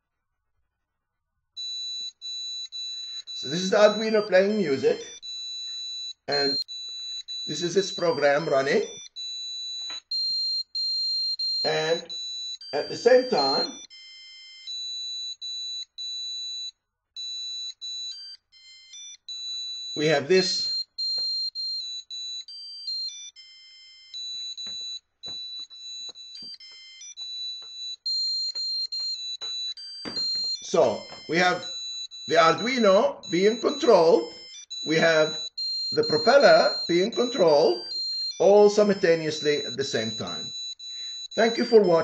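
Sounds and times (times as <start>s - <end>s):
high electronic beeps: 6.3s - 10.0s, 11.5s - 13.8s, 24.7s - 42.0s.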